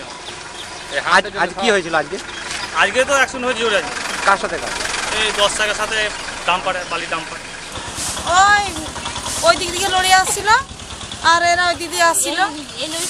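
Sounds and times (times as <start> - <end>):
vehicle engine running: 0.0 - 13.0
people talking: 2.8 - 13.0.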